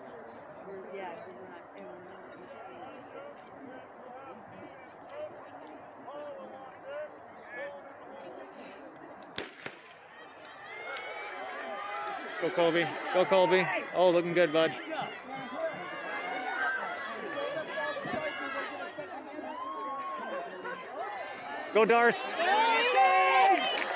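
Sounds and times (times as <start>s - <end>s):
distant crowd chatter: 0.0s - 23.9s
starting pistol crack: 9.4s - 10.0s.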